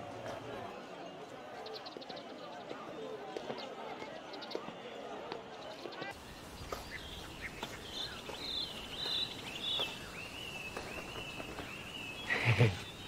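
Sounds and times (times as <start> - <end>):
open-air ambience: 0.0 - 13.0
birds chirping: 0.5 - 13.0.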